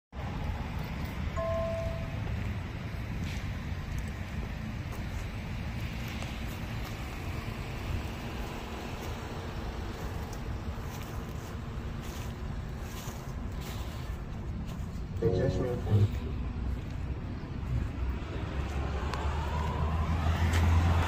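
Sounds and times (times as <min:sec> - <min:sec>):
car engine idling: 0:00.3 - 0:21.0.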